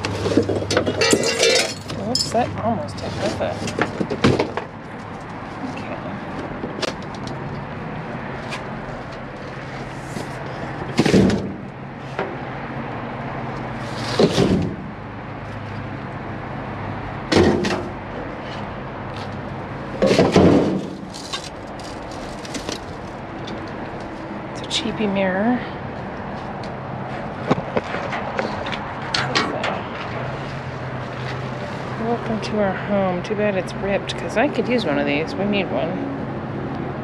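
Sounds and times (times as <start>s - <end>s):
trash scraping in metal dumpster: 20.0s - 23.0s.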